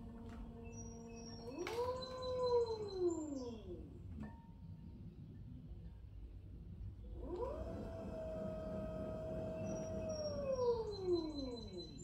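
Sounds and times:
pottery wheel motor whining: 0.0s - 4.3s, 7.1s - 12.0s.

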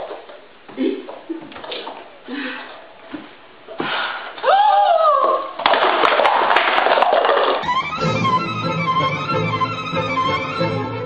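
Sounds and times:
woman screaming: 4.4s - 5.6s
fiddle music: 7.6s - 11.0s.

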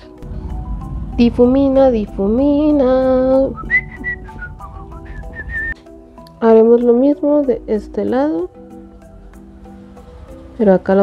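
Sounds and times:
background music: 0.0s - 11.0s
woman whistling: 3.4s - 5.9s.

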